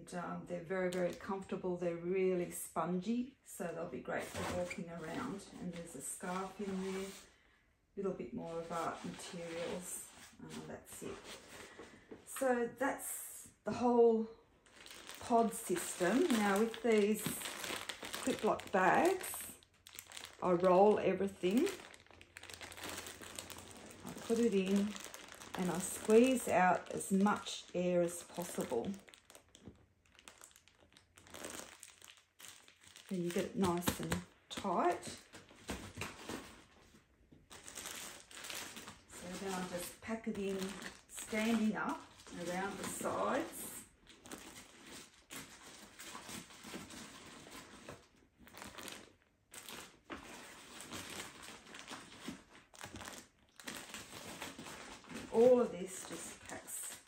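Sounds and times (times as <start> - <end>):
plastic bag crinkling: 14.6 - 57.0.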